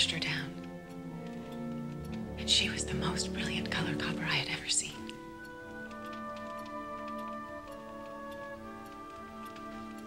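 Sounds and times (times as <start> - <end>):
faint ticking: 0.0 - 10.0
soft background music with held notes: 0.0 - 10.0.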